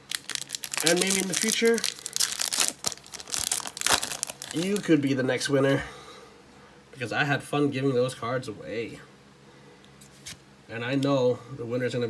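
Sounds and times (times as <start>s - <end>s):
foil wrapper crinkling: 0.0s - 5.0s.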